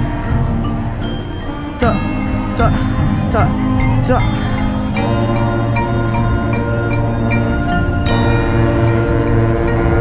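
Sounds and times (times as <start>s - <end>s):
marching band sustained chord: 0.0s - 10.0s
trumpet: 0.0s - 10.0s.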